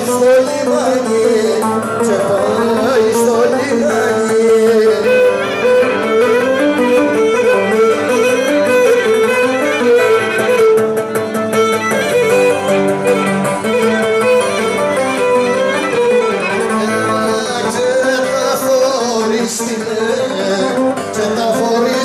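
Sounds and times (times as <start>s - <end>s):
plucked and strummed lute: 0.0s - 22.0s.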